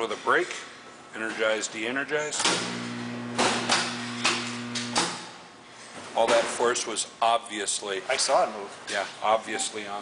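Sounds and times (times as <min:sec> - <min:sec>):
electric motor hum: 0:02.6 - 0:05.2.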